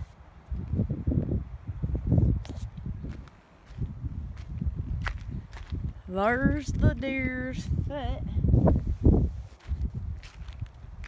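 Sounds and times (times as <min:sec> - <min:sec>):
footsteps on rocky ground: 0:02.3 - 0:06.2, 0:08.8 - 0:11.0.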